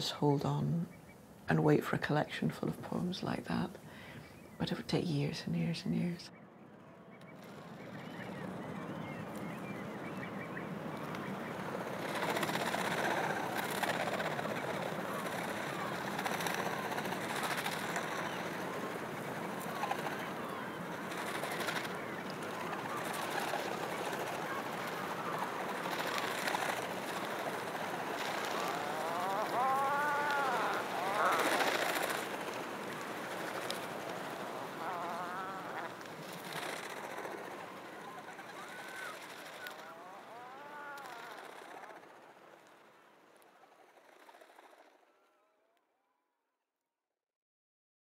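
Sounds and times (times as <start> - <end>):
steady background hiss: 0.0 - 44.8
birds calling: 3.2 - 44.8.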